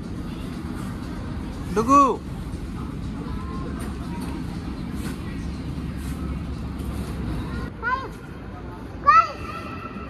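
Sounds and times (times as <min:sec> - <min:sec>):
faint distant voices: 0:00.2 - 0:10.0.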